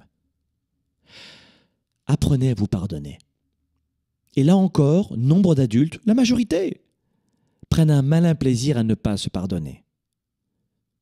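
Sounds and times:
man breathing into microphone: 1.0s - 1.8s.

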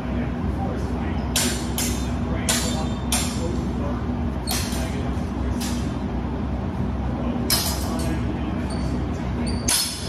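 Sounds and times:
low hall rumble: 0.0s - 10.0s.

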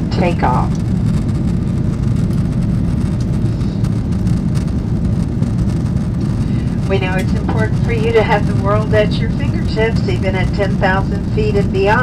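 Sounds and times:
jet airliner cabin rumble: 0.0s - 12.0s.

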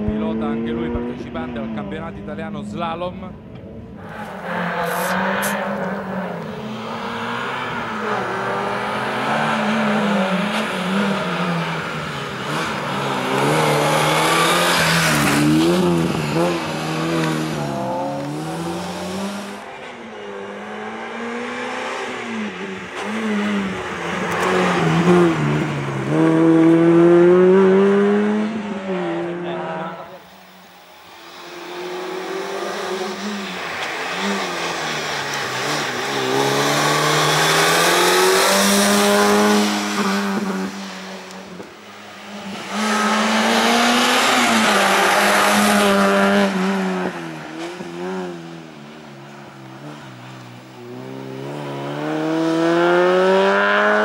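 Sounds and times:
race car engine revving: 3.9s - 54.0s.

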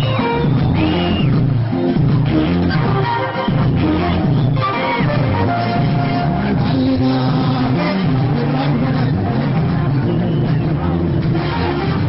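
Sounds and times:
crowd voices: 0.0s - 12.0s
live band music with bass: 0.0s - 12.0s.

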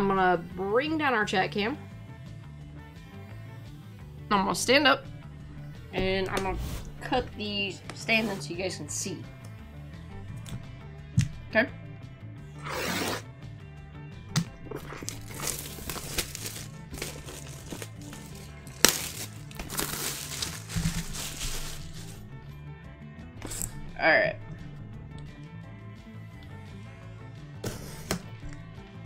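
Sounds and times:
background music: 0.0s - 29.0s
plastic wrapping crinkling: 14.7s - 22.2s
cardboard boxes handled: 15.0s - 22.2s.

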